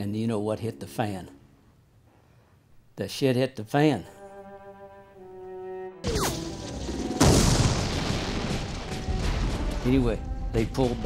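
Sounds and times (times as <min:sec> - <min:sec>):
loud explosion: 0:06.2 - 0:10.5
rifle fire crackling: 0:06.3 - 0:10.6.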